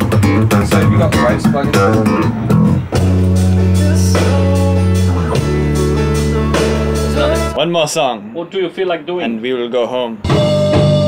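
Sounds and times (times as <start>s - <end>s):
bass guitar: 0.0s - 7.6s, 10.2s - 11.0s
guitar picked notes: 0.0s - 7.6s.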